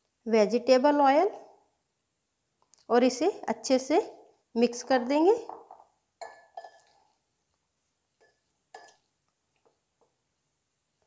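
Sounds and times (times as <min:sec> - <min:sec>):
spoon clinking on glass bowl: 0:06.2 - 0:07.0, 0:08.2 - 0:09.1.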